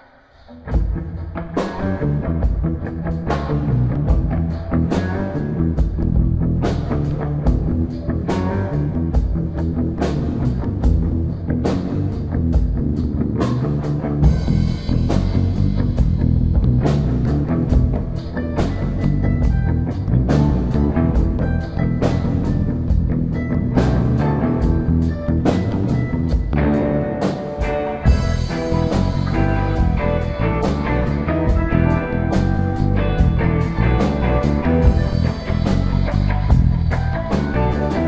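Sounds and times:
electric guitar: 0.0s - 38.0s
drum kit beat: 0.7s - 38.0s.

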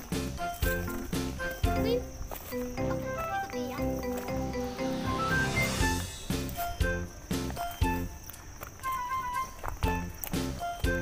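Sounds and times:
melody over steady beat: 2.6s - 7.3s.

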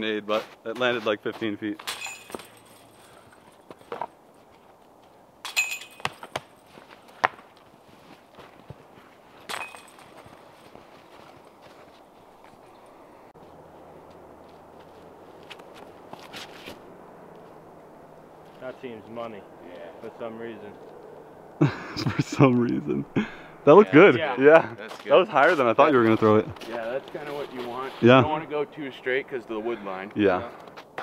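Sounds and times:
low steady background noise: 0.0s - 31.0s
footsteps in wet snow: 5.9s - 17.7s, 24.9s - 28.2s.

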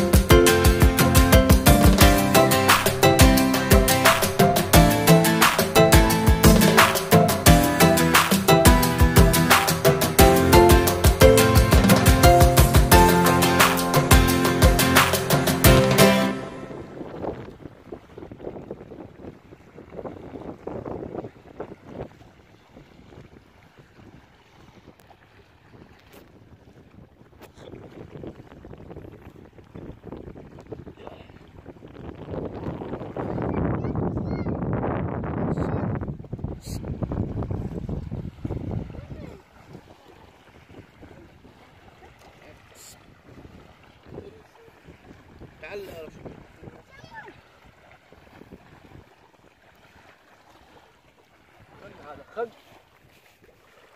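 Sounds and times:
small waves lapping on sand: 2.0s - 10.2s, 16.5s - 34.4s, 35.6s - 53.9s
wind buffeting microphone: 16.4s - 53.8s.

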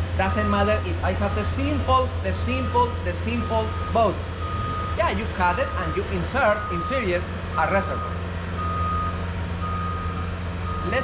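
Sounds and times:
electronic beeper pulses: 2.6s - 7.0s
low hum: 4.4s - 5.1s.

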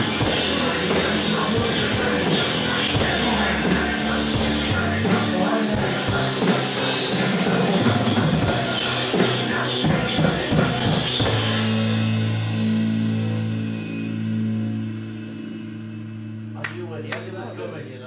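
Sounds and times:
drum kit playing: 0.0s - 15.6s
band holding a long chord: 0.0s - 18.0s
rock music: 0.0s - 18.0s.

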